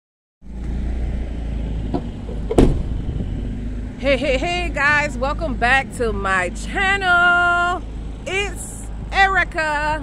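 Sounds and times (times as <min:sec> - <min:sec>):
low vehicle rumble: 0:00.4 - 0:10.0
loud thump: 0:01.9 - 0:03.3.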